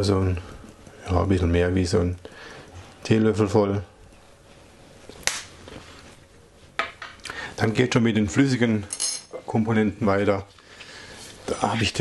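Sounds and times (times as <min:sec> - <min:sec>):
faint low room noise: 0:00.0 - 0:12.0.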